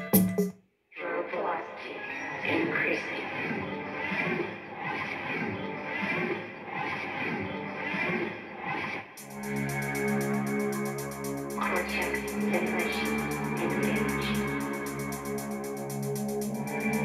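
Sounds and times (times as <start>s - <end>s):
electronic music through speaker: 0.0s - 0.5s, 2.0s - 17.0s.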